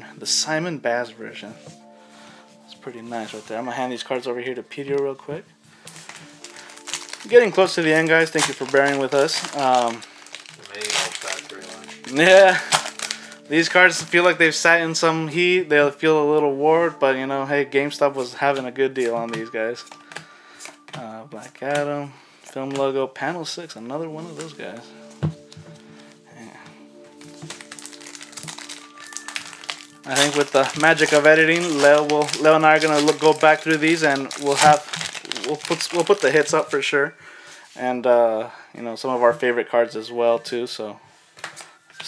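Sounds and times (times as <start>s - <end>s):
soft background music: 0.0s - 42.0s
foil wrapper crinkling and tearing: 5.8s - 14.5s, 19.0s - 20.9s, 27.2s - 36.9s.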